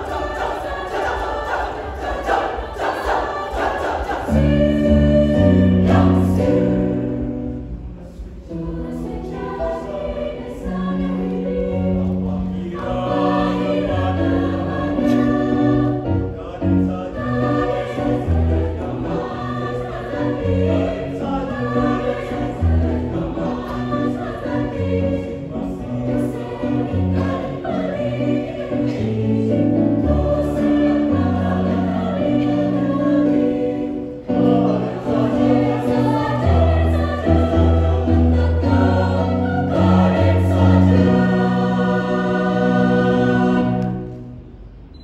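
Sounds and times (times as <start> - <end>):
mixed choir singing: 0.0 - 44.5.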